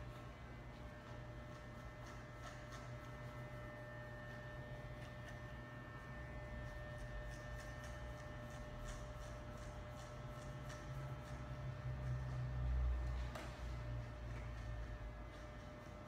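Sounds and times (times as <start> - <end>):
electric hair clipper humming: 0.0 - 16.0
clipper cutting hair: 1.0 - 16.0.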